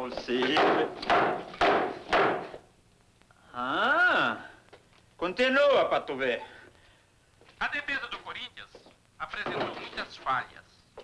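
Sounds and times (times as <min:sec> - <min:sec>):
hammer hitting radio: 0:00.4 - 0:02.6.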